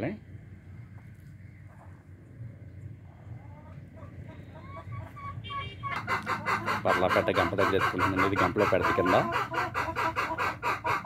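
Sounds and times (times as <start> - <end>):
hens clucking: 0.9 - 11.0.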